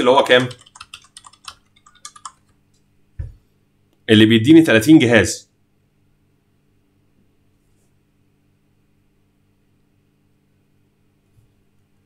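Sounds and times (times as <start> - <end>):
computer keyboard typing: 0.0 - 2.6.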